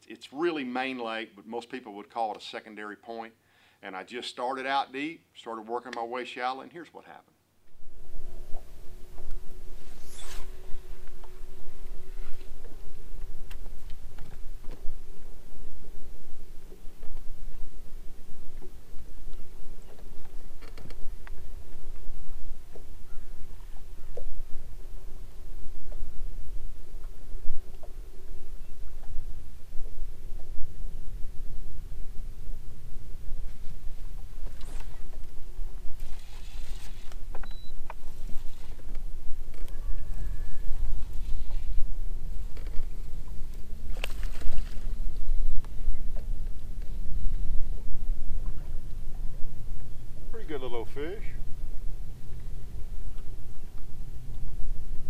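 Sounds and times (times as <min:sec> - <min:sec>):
wind noise on microphone: 0:07.6 - 0:55.0.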